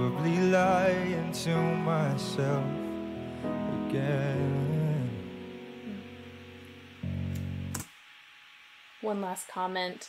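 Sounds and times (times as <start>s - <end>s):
acoustic guitar chords: 0.0s - 7.8s.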